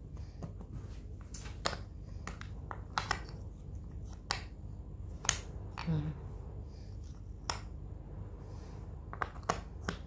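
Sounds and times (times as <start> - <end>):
wooden pieces tapping on board: 1.6 - 3.4, 9.1 - 10.0.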